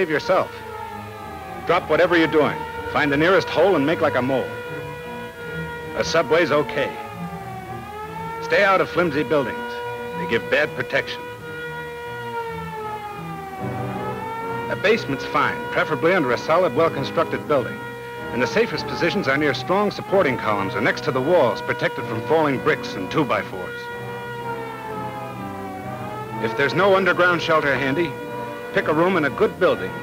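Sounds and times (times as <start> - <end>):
air-raid siren wailing: 0.0 - 30.0.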